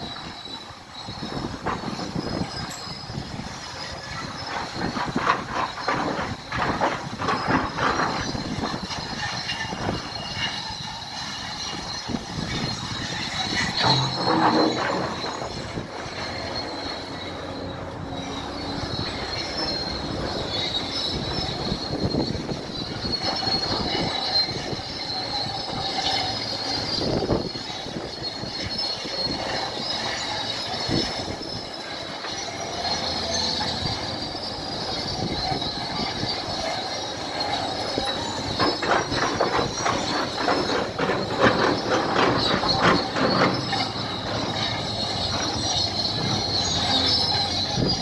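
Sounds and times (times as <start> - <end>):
bulldozer tracks squealing: 0.0 - 48.0
diesel engine rumble: 0.0 - 48.0
track clanks: 0.0 - 48.0.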